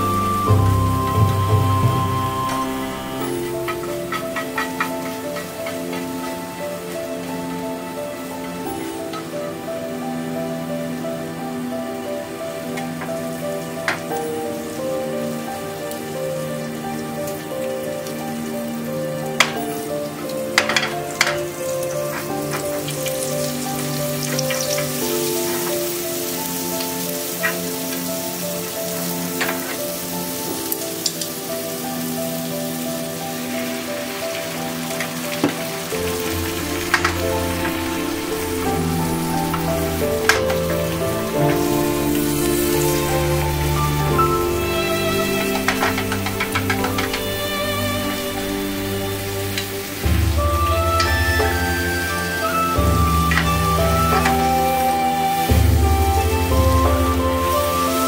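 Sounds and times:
background music: 0.0 - 58.0
egg mixture sizzling in a frying pan: 0.1 - 7.5, 12.8 - 58.0.

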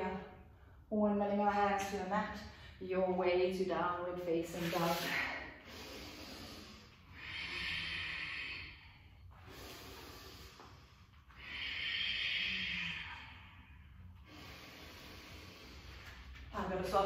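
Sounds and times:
woman breathing: 4.4 - 16.5.

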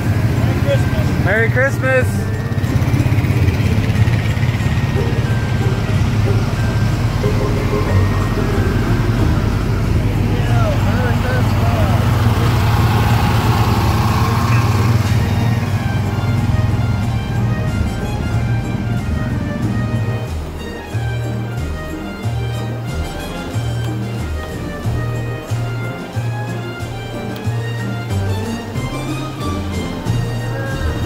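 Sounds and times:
parade music playing: 0.0 - 31.0
vehicle engines running: 0.0 - 31.0.

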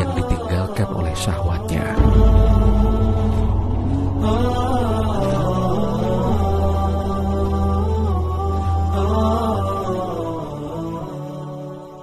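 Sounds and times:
person chanting: 0.0 - 12.0
low sustained drone: 1.5 - 11.6.

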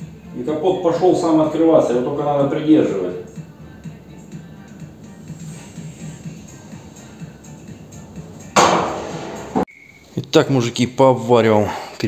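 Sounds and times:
background music with regular beat: 0.0 - 9.7
metal hood slamming shut: 8.4 - 9.7.

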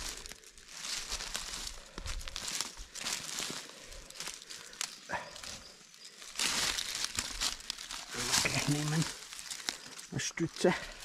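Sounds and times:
footsteps crunching on forest path: 0.0 - 11.0.

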